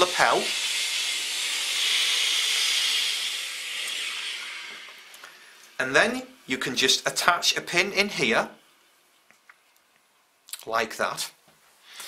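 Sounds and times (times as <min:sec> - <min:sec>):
steam iron hissing: 0:00.0 - 0:06.2.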